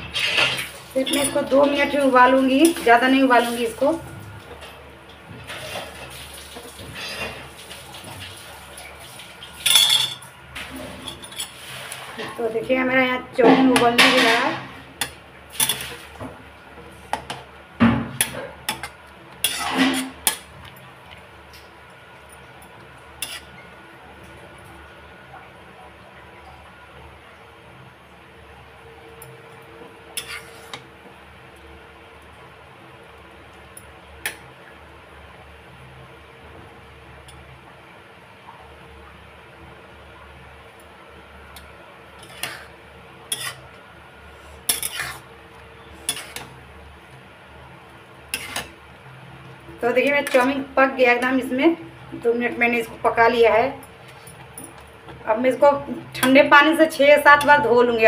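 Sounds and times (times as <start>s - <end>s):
spatula scraping metal pan: 18.2s - 20.4s, 23.2s - 23.6s, 30.2s - 30.8s, 42.2s - 42.7s, 43.3s - 43.7s, 44.4s - 46.6s, 48.3s - 48.8s, 50.0s - 50.6s.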